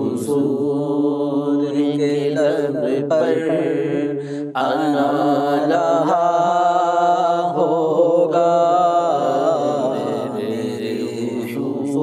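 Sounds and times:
steady vocal drone: 0:00.0 - 0:12.0.

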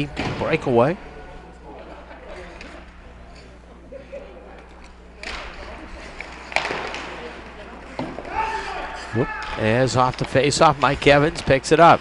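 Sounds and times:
hockey stick clack: 0:06.2 - 0:07.3, 0:09.4 - 0:12.0.

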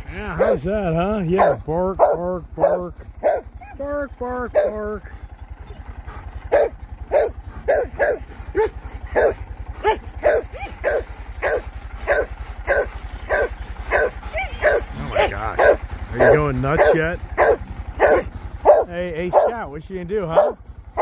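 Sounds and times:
small motorcycle engine running: 0:00.0 - 0:21.0
dog barking: 0:00.2 - 0:00.7, 0:01.3 - 0:03.8, 0:04.5 - 0:04.9, 0:05.6 - 0:19.7, 0:20.3 - 0:21.0.

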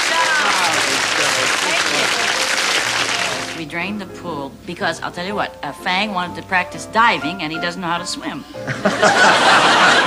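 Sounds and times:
audience applause: 0:00.0 - 0:03.6
woman speaking: 0:03.1 - 0:08.5.

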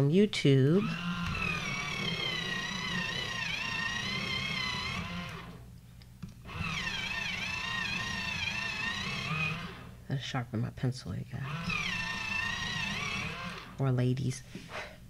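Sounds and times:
electric pencil sharpener whining: 0:00.6 - 0:05.6, 0:06.2 - 0:10.0, 0:11.4 - 0:13.9.

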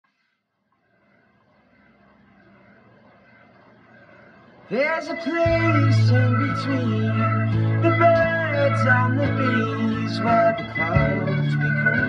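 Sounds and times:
distant traffic hum: 0:00.8 - 0:09.6.

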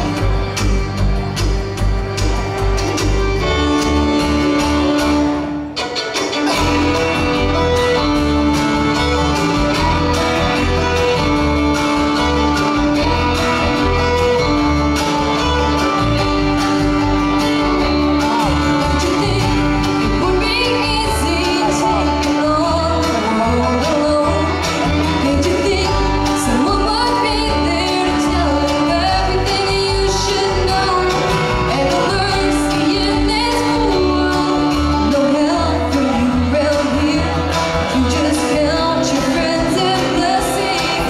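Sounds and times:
banjo picking: 0:00.0 - 0:41.0
fiddles holding long notes: 0:00.0 - 0:41.0
guitar picking: 0:00.0 - 0:41.0
mandolin picking: 0:00.0 - 0:41.0
upright bass: 0:00.0 - 0:41.0.

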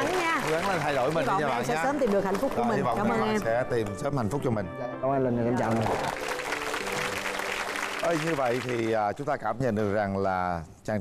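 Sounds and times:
studio audience applauding: 0:00.0 - 0:04.6, 0:05.6 - 0:09.2
background music steady notes: 0:00.0 - 0:10.1.

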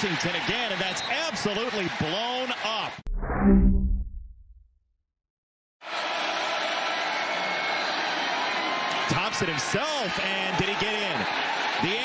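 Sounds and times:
stadium crowd noise: 0:00.0 - 0:03.0, 0:05.8 - 0:12.0.

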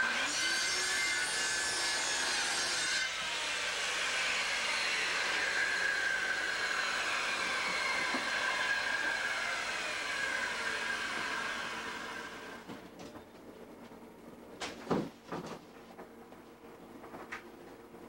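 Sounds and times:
circular saw cutting plywood: 0:00.0 - 0:12.7
electric motor whine: 0:03.6 - 0:12.6.

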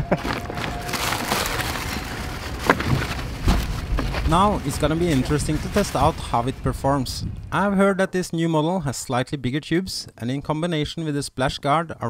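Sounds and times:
plastic rustling: 0:00.0 - 0:06.8
low rumble: 0:00.0 - 0:08.2.

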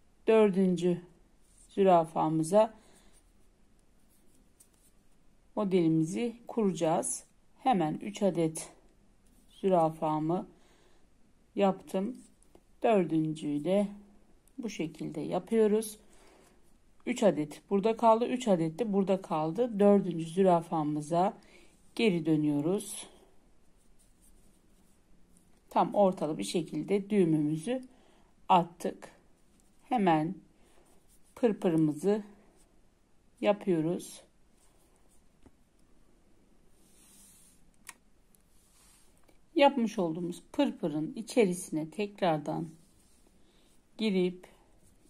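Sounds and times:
needle and thread rustling: 0:00.2 - 0:45.0
thread rustling through ribbon: 0:01.3 - 0:05.6, 0:09.1 - 0:10.2, 0:19.8 - 0:25.8, 0:30.8 - 0:33.4, 0:36.7 - 0:39.6, 0:42.2 - 0:45.0.

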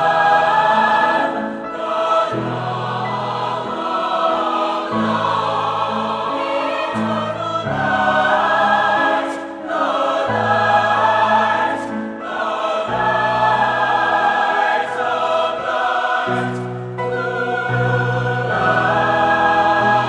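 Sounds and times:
choir singing: 0:00.0 - 0:20.0
piano accompaniment: 0:00.0 - 0:20.0.

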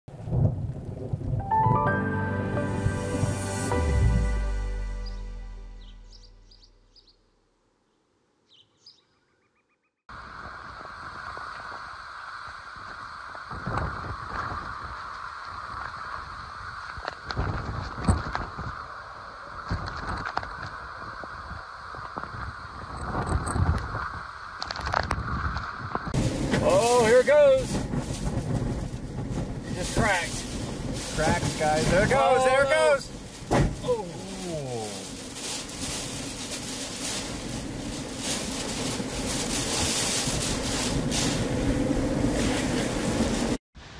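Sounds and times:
hurricane wind: 0:00.1 - 0:01.9, 0:10.1 - 0:43.6
driving rain: 0:00.1 - 0:04.5, 0:10.1 - 0:43.6
intro music: 0:01.4 - 0:06.9.

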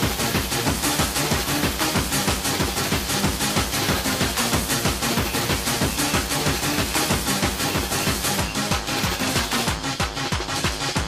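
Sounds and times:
fast rave dance music: 0:00.0 - 0:11.0.

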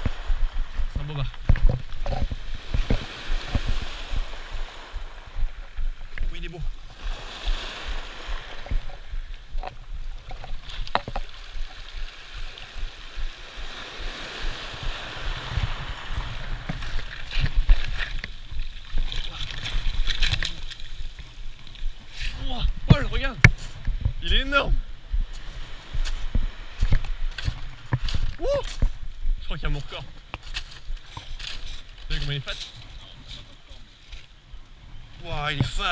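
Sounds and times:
water splashing: 0:00.0 - 0:23.5
surf washing over shingle: 0:00.0 - 0:33.9, 0:35.2 - 0:35.9
wind rumbling on microphone: 0:00.0 - 0:35.9.

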